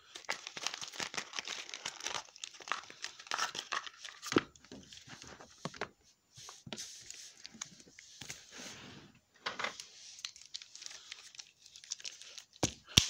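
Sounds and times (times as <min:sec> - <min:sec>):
plastic figures rustling and clicking: 0:09.5 - 0:13.0.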